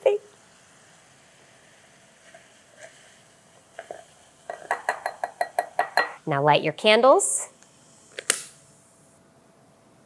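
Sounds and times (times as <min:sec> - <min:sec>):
metal cup tapping glass rim: 0:04.5 - 0:06.2.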